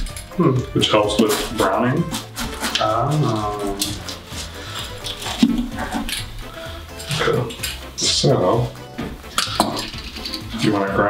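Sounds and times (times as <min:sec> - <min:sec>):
pizza cutter crunching crust: 0:00.8 - 0:06.1
cutter scraping metal pan: 0:00.8 - 0:07.6.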